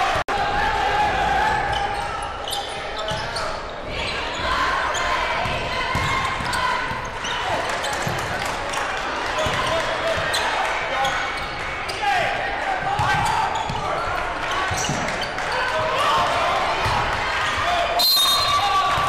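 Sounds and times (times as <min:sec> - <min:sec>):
crowd voices chattering: 0:00.0 - 0:19.0
sneakers squeaking on court: 0:01.7 - 0:05.2, 0:12.9 - 0:14.0, 0:14.6 - 0:15.5
basketball bouncing: 0:05.4 - 0:07.0.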